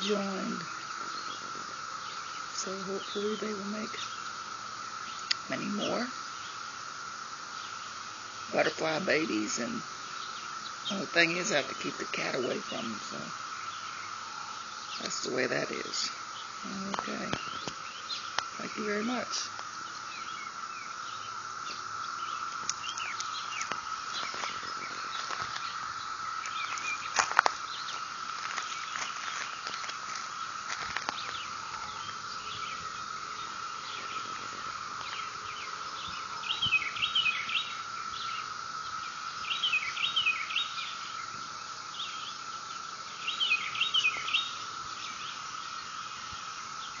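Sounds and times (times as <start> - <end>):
songbird chirping: 0.0 - 47.0.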